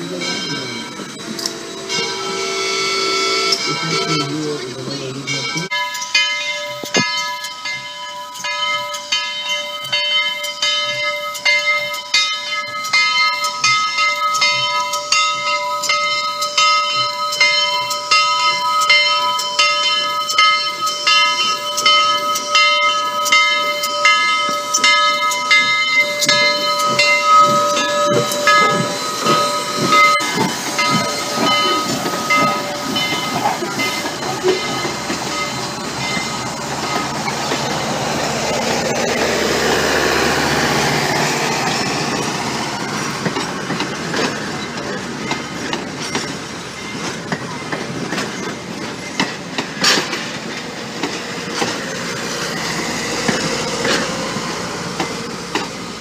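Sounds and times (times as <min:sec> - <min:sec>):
steam locomotive hissing: 0:00.0 - 0:12.2, 0:18.8 - 0:56.0
locomotive bell ringing: 0:00.0 - 0:56.0
train wheels rumbling: 0:00.0 - 0:56.0.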